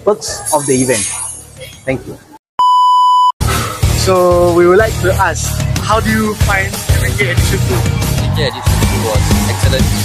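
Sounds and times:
steady electronic beep: 0:02.6 - 0:03.4
background music: 0:03.4 - 0:10.0.

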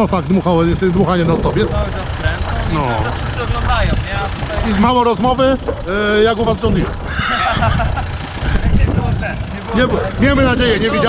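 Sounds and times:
wind rumbling on microphone: 0:00.6 - 0:11.0
man laughing: 0:07.0 - 0:09.5.

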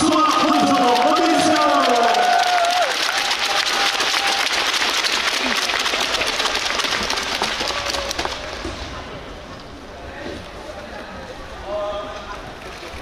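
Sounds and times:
audience applauding: 0:00.0 - 0:08.7.

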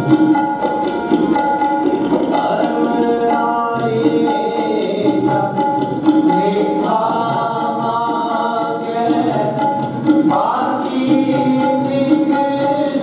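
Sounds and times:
tabla beat: 0:00.0 - 0:13.0
voices singing a hymn: 0:10.3 - 0:12.6.

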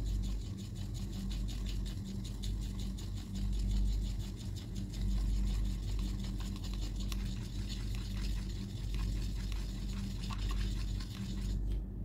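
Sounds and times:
paintbrush scratching in paint: 0:00.0 - 0:11.8
steady low hum: 0:00.0 - 0:12.0.

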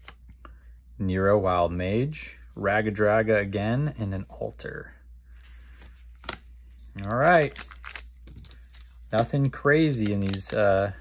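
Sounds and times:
cards sliding and rustling: 0:05.4 - 0:10.6.

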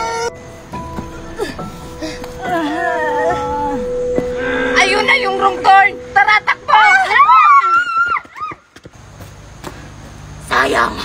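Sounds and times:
low steady hum: 0:00.3 - 0:08.3
children shrieking: 0:06.4 - 0:08.6.

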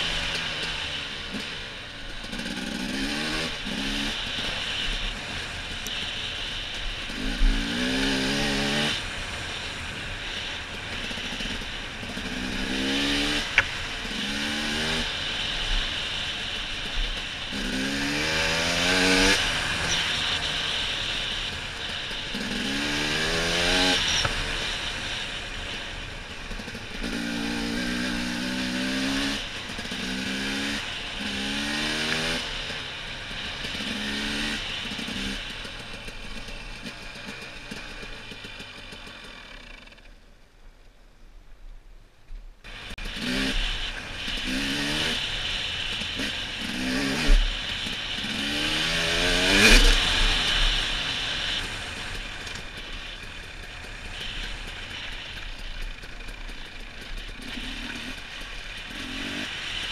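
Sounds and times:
dirt bike engine revving: 0:00.0 - 0:40.1, 0:42.7 - 0:59.9
wind and trail noise: 0:00.0 - 0:59.9.

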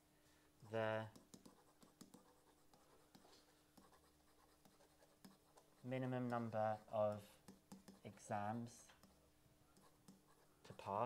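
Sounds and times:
stylus tapping: 0:01.1 - 0:04.0, 0:04.6 - 0:08.1, 0:09.8 - 0:10.3
stylus scratching on a surface: 0:01.1 - 0:08.3, 0:09.8 - 0:11.0.

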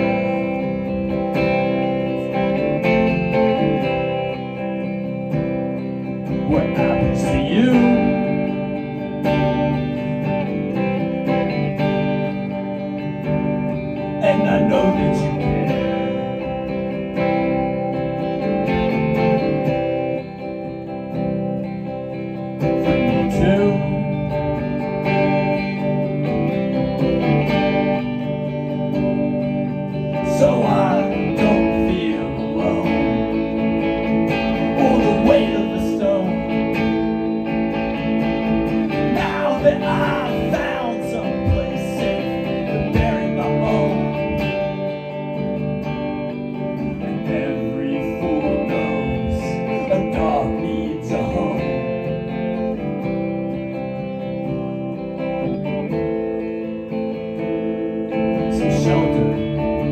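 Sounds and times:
man singing: 0:00.0 - 0:05.2, 0:06.0 - 0:10.1, 0:14.0 - 0:17.8, 0:22.7 - 0:25.8, 0:29.9 - 0:37.5, 0:38.7 - 0:45.3, 0:46.8 - 0:52.9, 0:57.6 - 0:59.9
electric guitar chords: 0:00.0 - 0:59.9.

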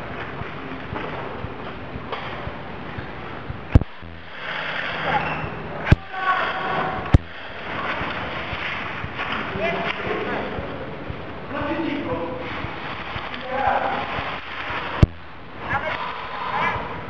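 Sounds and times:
distant shouting voices: 0:05.0 - 0:08.0.

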